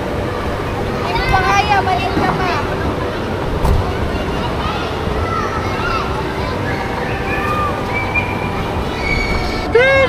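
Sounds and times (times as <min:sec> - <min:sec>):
low indoor rumble: 0:00.0 - 0:10.0.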